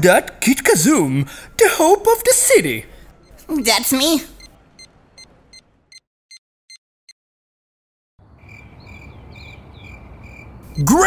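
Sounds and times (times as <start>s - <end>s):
crickets chirping: 8.4s - 10.8s.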